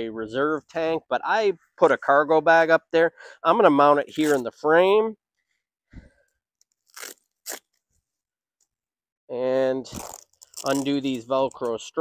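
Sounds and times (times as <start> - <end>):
velcro straps rasping: 4.2 - 4.4, 6.2 - 8.8, 9.9 - 11.7.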